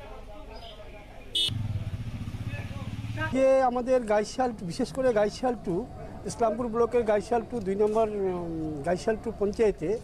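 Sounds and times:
vehicle engine idling: 1.4 - 3.4
faint background voices: 4.2 - 10.0.

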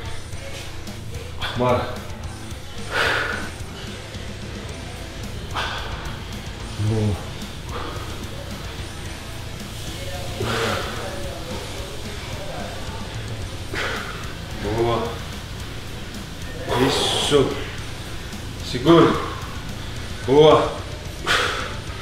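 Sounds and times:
background music: 0.0 - 22.0
man breathing out hard: 5.5 - 6.3, 21.2 - 21.9
man grunting with effort: 6.8 - 7.3.

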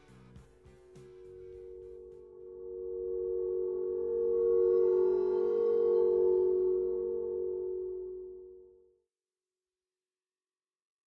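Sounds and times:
high ringing overtones: 0.8 - 8.9
held electronic tone: 1.0 - 8.9.

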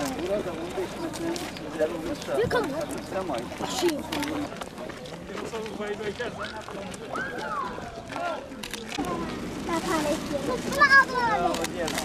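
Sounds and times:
footsteps on dirt road: 0.0 - 12.0
people talking: 0.0 - 12.0.

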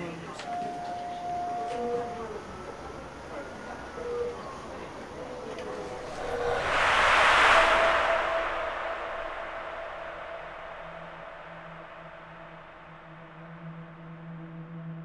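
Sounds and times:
low steady drone tones: 0.0 - 15.0
wash of noise: 5.3 - 13.4.

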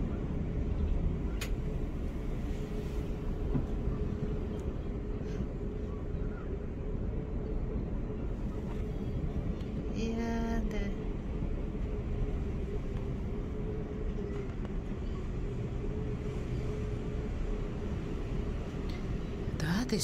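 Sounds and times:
mechanical hum and rumble: 0.0 - 20.0.

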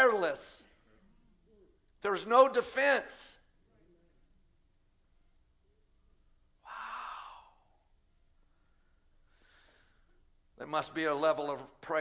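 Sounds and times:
man sighing heavily: 6.6 - 7.8.

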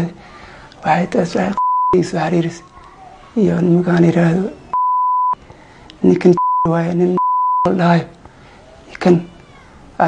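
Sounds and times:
censor bleep tone: 1.6 - 2.0, 4.8 - 5.4, 6.4 - 7.7.

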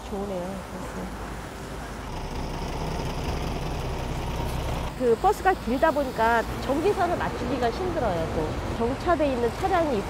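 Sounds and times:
bus engine rumbling: 0.0 - 10.0.

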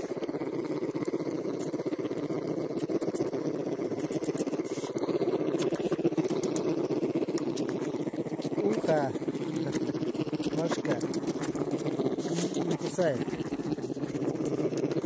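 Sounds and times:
bear cubs suckling and humming: 0.0 - 15.0.

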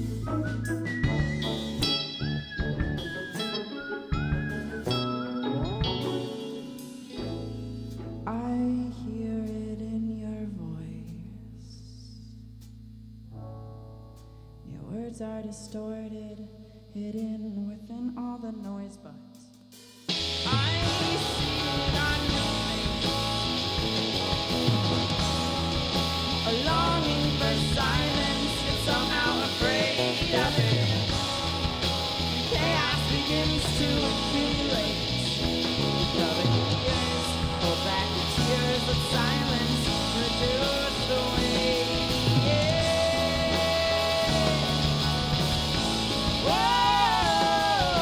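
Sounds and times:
rock band playing live: 0.0 - 8.7, 19.8 - 48.0.

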